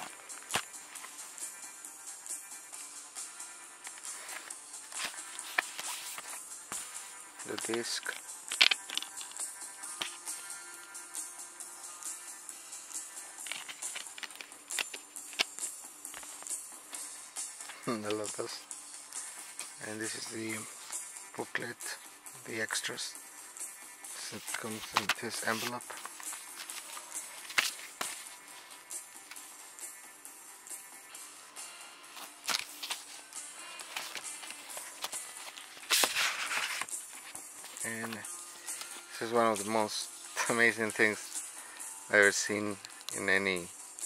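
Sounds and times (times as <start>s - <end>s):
background music: 0.0s - 44.0s
paper rustling and sliding: 3.9s - 9.4s, 13.4s - 15.5s, 24.2s - 28.8s, 32.2s - 39.7s
plastic case clicks and rustles: 7.5s - 9.4s, 13.4s - 16.5s, 24.5s - 28.4s, 32.4s - 33.1s.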